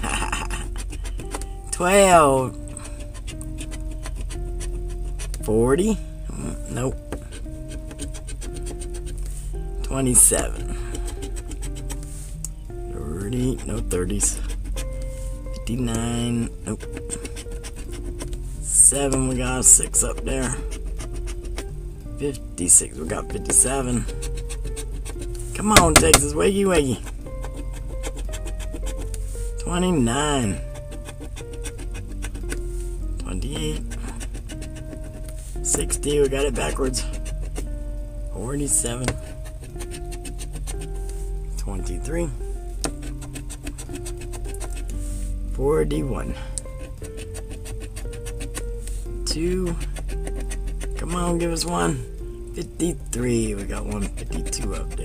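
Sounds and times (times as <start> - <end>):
coin scraping lottery ticket: 0.0 - 1.3, 2.8 - 5.3, 7.3 - 9.2, 10.0 - 12.0, 13.2 - 14.8, 15.7 - 21.6, 22.7 - 32.6, 33.2 - 37.7, 38.6 - 40.8, 43.0 - 44.9, 46.3 - 48.6, 49.6 - 52.0, 53.3 - 55.0
background music with held notes: 0.0 - 55.0.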